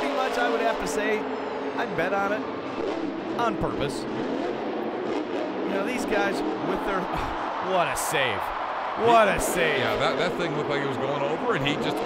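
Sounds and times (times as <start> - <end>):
truck engine revving hard: 0.0 - 7.6.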